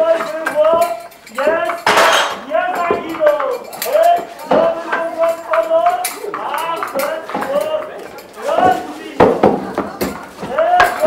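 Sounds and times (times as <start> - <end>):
clacks and clinks on stage: 0.0 - 11.0.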